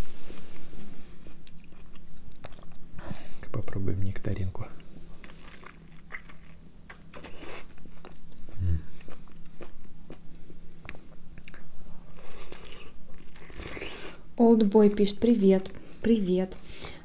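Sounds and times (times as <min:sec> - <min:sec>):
man biting and chewing fruit: 0:01.3 - 0:03.3, 0:05.1 - 0:14.2.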